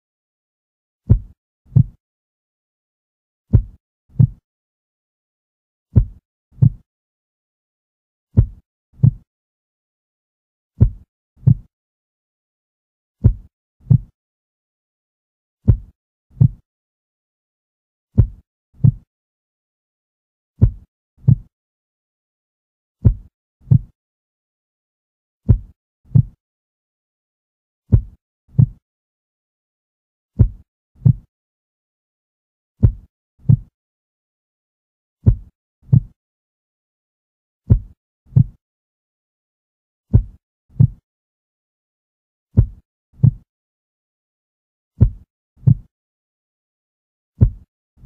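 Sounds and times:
heartbeat thumps: 0:01.1 - 0:02.0, 0:03.5 - 0:04.4, 0:06.0 - 0:06.8, 0:08.4 - 0:09.2, 0:10.8 - 0:11.7, 0:13.2 - 0:14.1, 0:15.6 - 0:16.6, 0:18.2 - 0:19.1, 0:20.6 - 0:21.5, 0:27.9 - 0:28.8, 0:30.4 - 0:31.3, 0:32.8 - 0:33.7, 0:35.2 - 0:36.1, 0:37.7 - 0:38.6, 0:40.1 - 0:41.0, 0:42.6 - 0:43.5, 0:45.0 - 0:45.9, 0:47.4 - 0:47.7.

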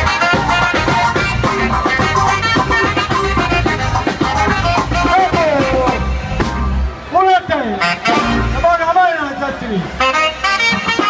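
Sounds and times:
band music: 0:00.0 - 0:11.0
loud voice calling out: 0:04.8 - 0:06.1.

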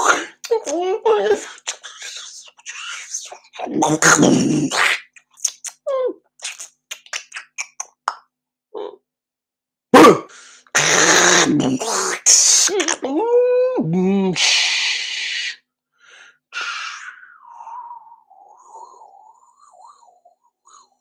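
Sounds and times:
mouth clicks and pops: 0:04.2 - 0:08.3
man's sliding vocal tone: 0:10.0 - 0:13.0.

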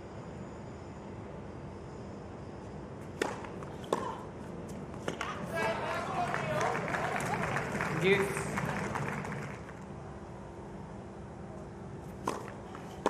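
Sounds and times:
tennis ball struck by rackets: 0:03.2 - 0:04.2, 0:12.2 - 0:13.0
crowd hum: 0:05.3 - 0:09.8.

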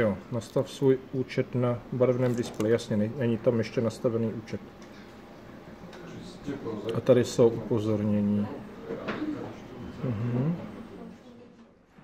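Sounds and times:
man humming hm: 0:09.9 - 0:10.7.

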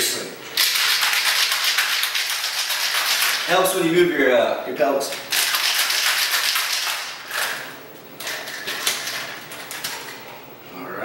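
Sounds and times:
ice rattling in cocktail shaker: 0:00.6 - 0:03.8, 0:05.1 - 0:07.7.

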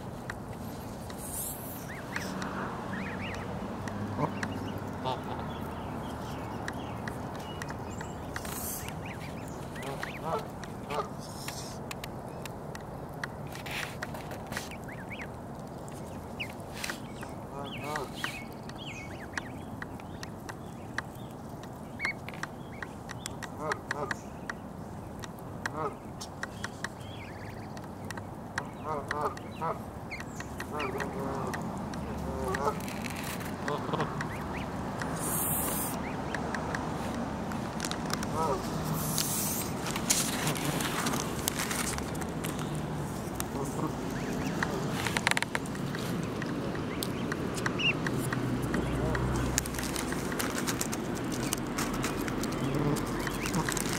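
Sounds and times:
beaks plucking grass clicks: 0:00.0 - 0:53.9
goslings peeping: 0:00.1 - 0:11.8, 0:13.5 - 0:53.9
goose low calls: 0:04.2 - 0:05.6, 0:09.8 - 0:11.8, 0:30.7 - 0:32.9, 0:33.6 - 0:36.2, 0:38.2 - 0:39.7, 0:43.4 - 0:45.0, 0:52.5 - 0:53.9.

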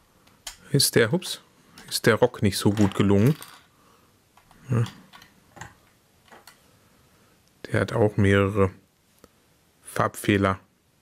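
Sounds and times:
plastic toy parts clicking: 0:02.7 - 0:03.7.

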